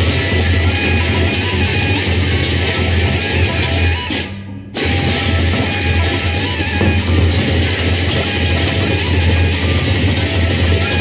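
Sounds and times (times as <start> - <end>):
barrel drums: 0.0 - 11.0
hand cymbals: 0.0 - 11.0.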